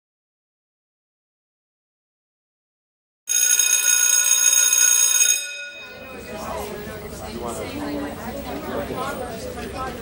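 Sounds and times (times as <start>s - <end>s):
electric bell ringing: 3.3s - 6.3s.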